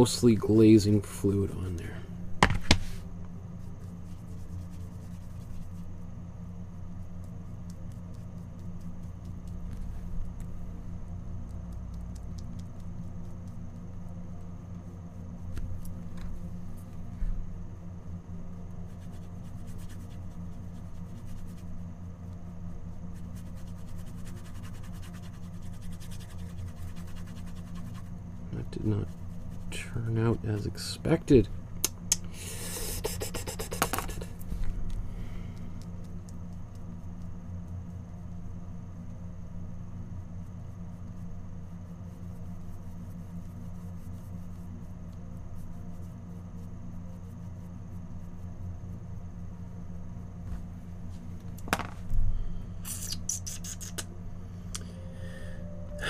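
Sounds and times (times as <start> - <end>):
steady low hum: 0.0 - 56.0
paintbrush scratching on canvas: 3.6 - 5.9, 18.8 - 21.8, 22.8 - 28.1, 28.7 - 30.8, 32.7 - 34.4, 40.7 - 48.8.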